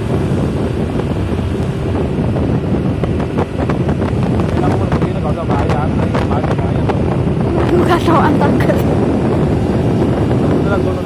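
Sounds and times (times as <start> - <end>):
motorcycle engine rumble: 0.0 - 11.0
wind buffeting microphone: 0.0 - 11.0
person talking: 7.5 - 8.9.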